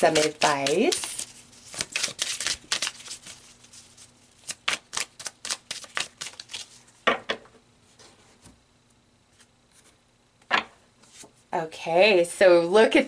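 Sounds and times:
cards being shuffled: 0.0 - 6.8.

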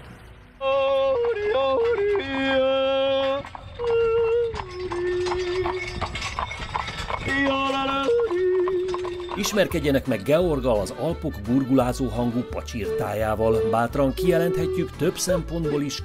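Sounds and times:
man yodeling: 0.6 - 5.9, 7.2 - 10.1, 11.5 - 16.0.

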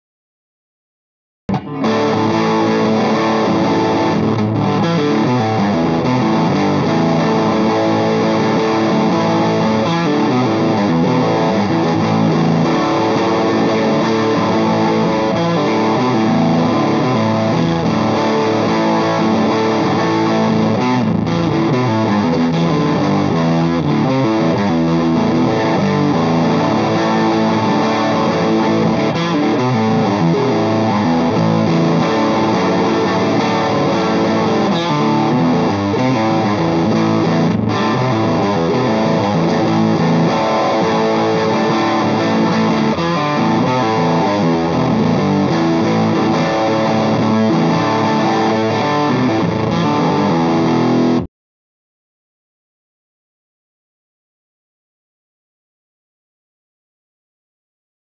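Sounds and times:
overdriven electric guitar: 1.5 - 51.3.

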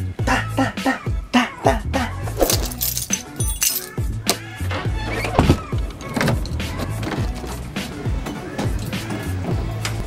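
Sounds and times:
bass-heavy beat music: 0.0 - 10.0.

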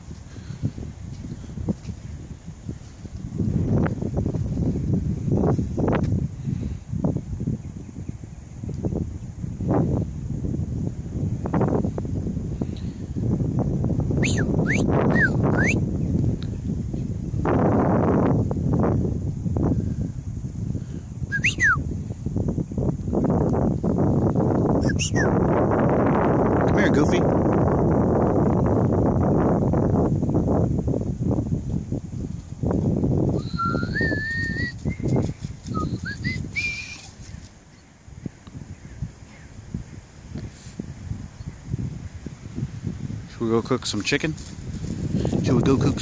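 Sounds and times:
wind buffeting microphone: 0.0 - 46.0.

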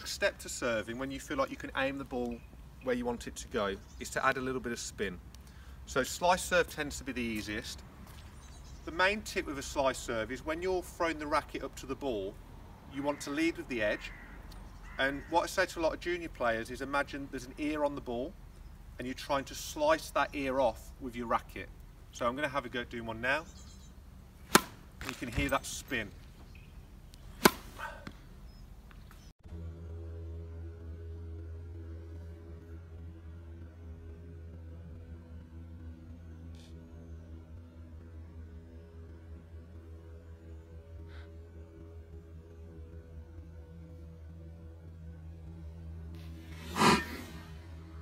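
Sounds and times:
faint background music: 0.0 - 48.0
low hum with held tones: 15.7 - 48.0
tennis racket striking ball: 24.4 - 25.3, 27.2 - 28.2.

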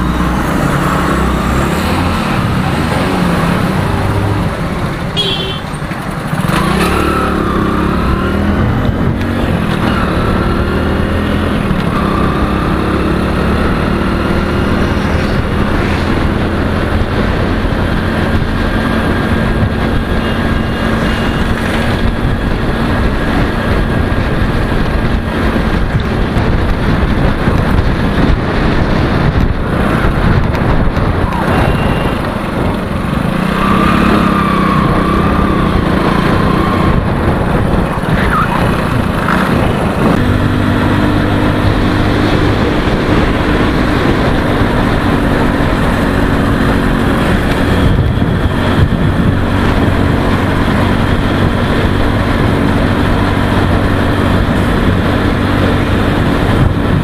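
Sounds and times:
motorcycle engine running: 0.0 - 57.0
traffic passing: 0.0 - 57.0
wind and road noise: 0.0 - 57.0.

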